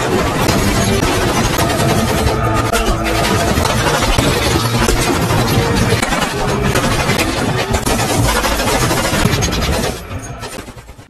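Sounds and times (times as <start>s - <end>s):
engines running: 0.0s - 11.0s.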